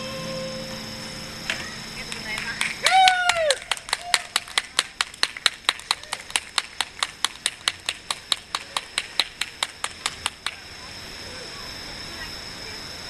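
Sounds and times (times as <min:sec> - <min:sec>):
faint steady high tone: 0:00.0 - 0:03.0, 0:10.6 - 0:13.0
fast percussive claps: 0:02.1 - 0:10.6.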